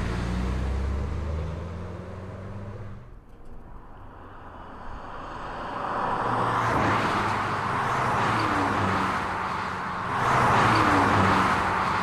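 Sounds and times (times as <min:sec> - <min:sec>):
car driving: 0:00.0 - 0:12.0.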